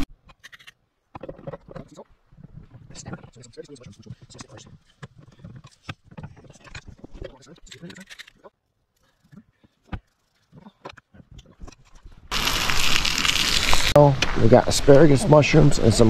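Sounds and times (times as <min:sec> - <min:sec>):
steak sizzling in a skillet: 0:12.3 - 0:14.0.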